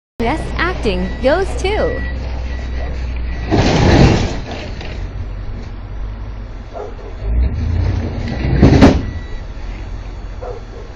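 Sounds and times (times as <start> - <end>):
truck engine pulling away: 0.2 - 10.9.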